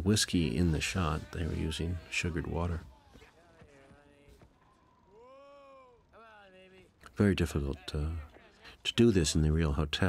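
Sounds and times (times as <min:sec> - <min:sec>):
faint human voice calling: 0:01.0 - 0:06.2.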